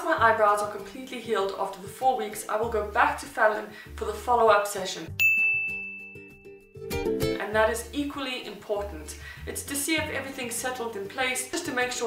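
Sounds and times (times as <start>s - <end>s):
faint background music: 0.0s - 5.2s, 6.8s - 12.0s
bell-like ding: 5.2s - 6.8s.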